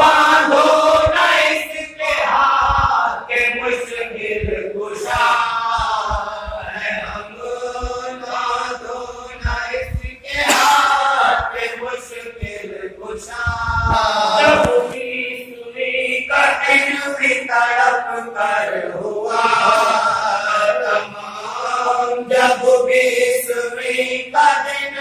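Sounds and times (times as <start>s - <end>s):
man reciting at microphone: 0.0s - 25.0s
men chanting together: 0.0s - 25.0s.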